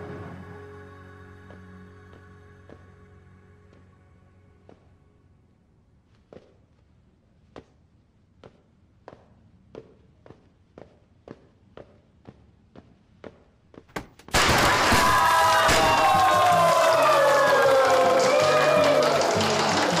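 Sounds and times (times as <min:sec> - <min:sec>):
music: 0:00.0 - 0:05.4, 0:15.9 - 0:20.0
dress shoes walking on hard floor: 0:06.0 - 0:14.3
party poppers going off: 0:13.9 - 0:20.0
loud cheering: 0:14.4 - 0:20.0.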